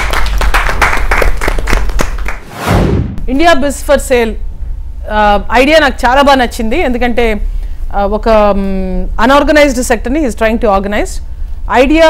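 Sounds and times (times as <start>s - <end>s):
people clapping: 0.0s - 2.5s
rising whoosh: 2.4s - 3.3s.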